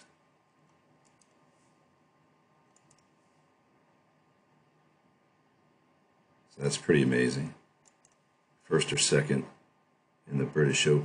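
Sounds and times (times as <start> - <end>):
faint clicks: 0.6 - 1.4, 2.7 - 3.2, 7.8 - 8.3.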